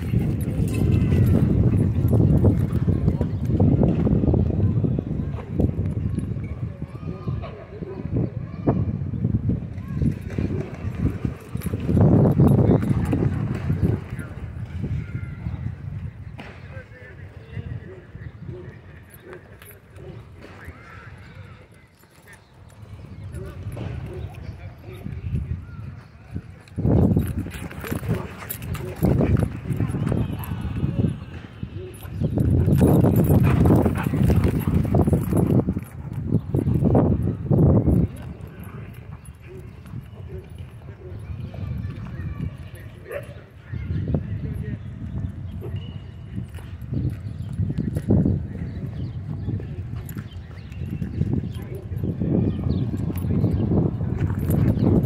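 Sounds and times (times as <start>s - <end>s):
dogs scuffling: 26.8s - 31.0s, 32.0s - 37.0s.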